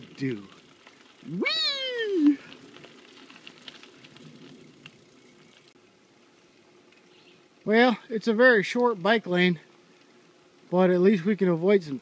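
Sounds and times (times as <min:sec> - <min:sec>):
bicycle rolling noise: 0:00.0 - 0:12.0
man exclaiming: 0:01.3 - 0:02.5.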